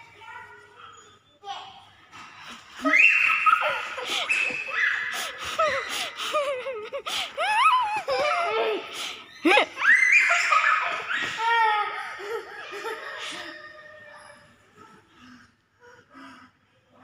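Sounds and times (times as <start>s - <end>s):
excited squealing: 2.8s - 11.7s
high-pitched laughter: 2.8s - 14.4s.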